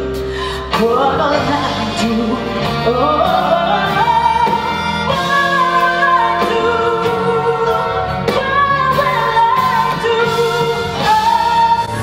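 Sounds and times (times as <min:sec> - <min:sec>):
keyboard and electric bass: 0:00.0 - 0:12.0
woman singing a ballad: 0:00.0 - 0:12.0.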